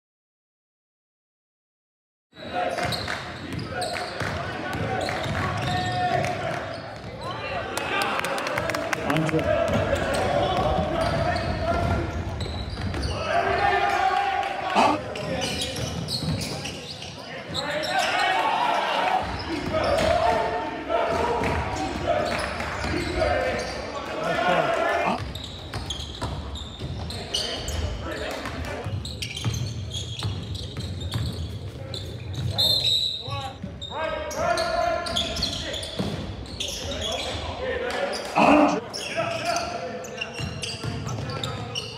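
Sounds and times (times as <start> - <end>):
voices echoing in hall: 2.4 - 41.9
basketball bouncing on court: 2.8 - 6.3.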